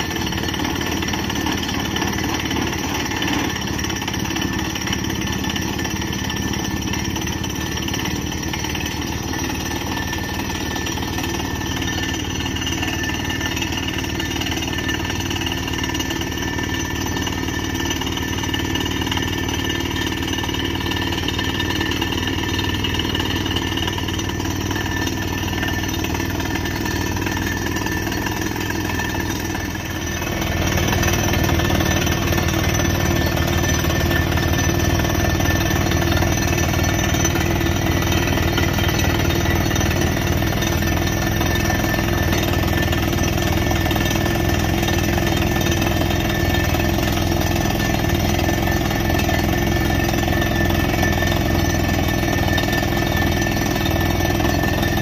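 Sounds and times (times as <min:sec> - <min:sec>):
drilling hammer pounding rapidly: 0:00.0 - 0:55.0
rig engine running: 0:00.0 - 0:55.0.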